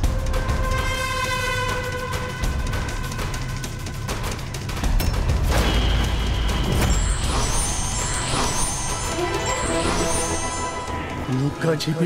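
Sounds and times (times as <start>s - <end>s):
thin high sustained tones: 7.0s - 12.0s.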